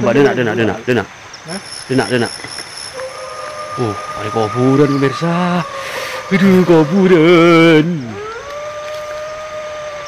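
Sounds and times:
person hooting: 3.0 - 8.3.

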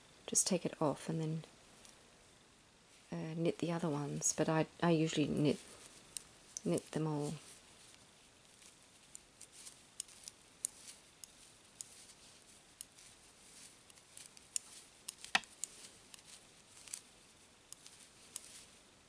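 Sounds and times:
metal knitting needles clicking: 8.5 - 18.7.

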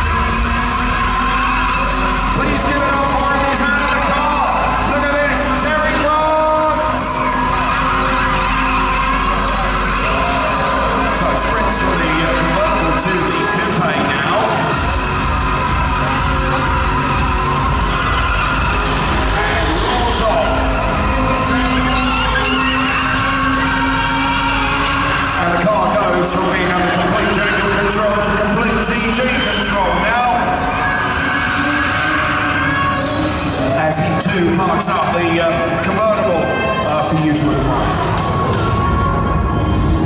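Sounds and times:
car engine revving: 0.0 - 35.8
loud arena music: 0.0 - 40.0.

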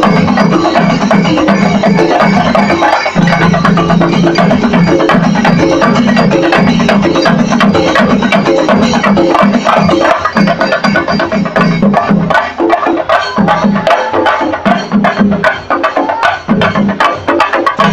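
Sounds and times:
cymbals: 0.0 - 17.9
fast drumming: 0.0 - 17.9.

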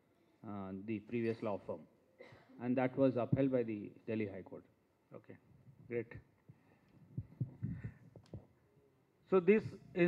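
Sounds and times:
microphone handling thumps: 7.1 - 8.5.

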